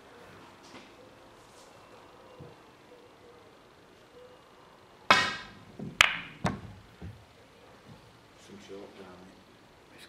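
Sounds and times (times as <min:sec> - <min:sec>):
cue striking ball: 0:05.1 - 0:07.2
dull knocks of balls: 0:05.1 - 0:07.2
snooker balls clacking: 0:05.1 - 0:07.2.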